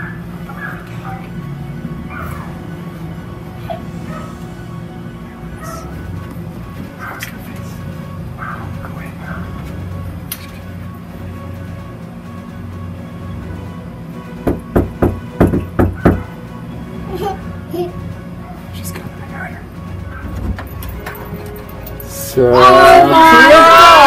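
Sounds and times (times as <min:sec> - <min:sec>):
background music: 0:00.0 - 0:24.0
knuckles knocking on door: 0:14.4 - 0:16.3.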